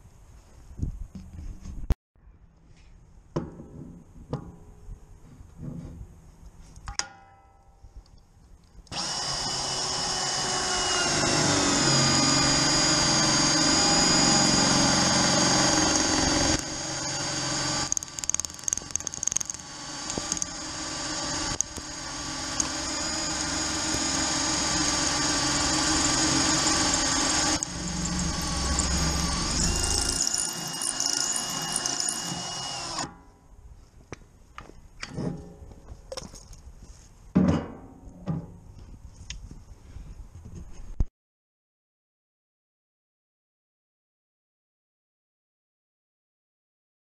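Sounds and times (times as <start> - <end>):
drill whining through steel: 8.9 - 33.2.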